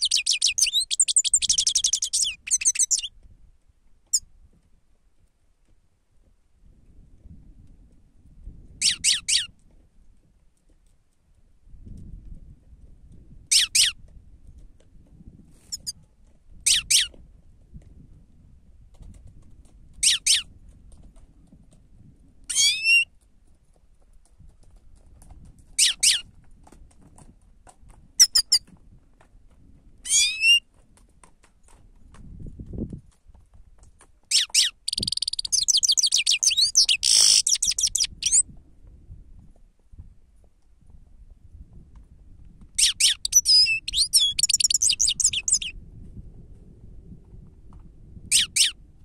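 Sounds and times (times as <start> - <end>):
bird sharp high calls: 0.0 - 3.1, 8.8 - 9.5, 16.7 - 17.1, 30.1 - 30.6, 34.3 - 38.4, 42.8 - 45.7
bird twittering song: 0.0 - 3.1, 34.3 - 38.4, 42.8 - 45.7.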